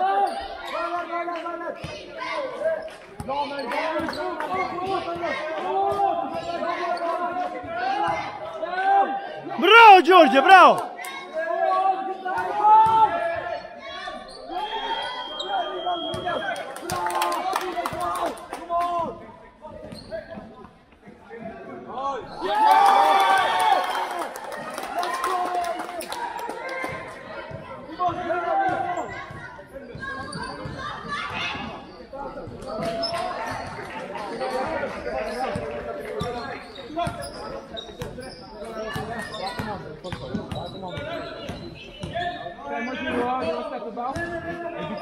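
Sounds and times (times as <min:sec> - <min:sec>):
people shouting: 0:09.6 - 0:10.9.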